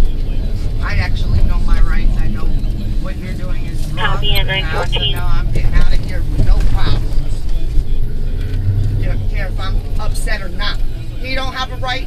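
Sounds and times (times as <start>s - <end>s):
car engine rumble and road noise: 0.0s - 12.0s
indistinct talking: 2.0s - 8.4s.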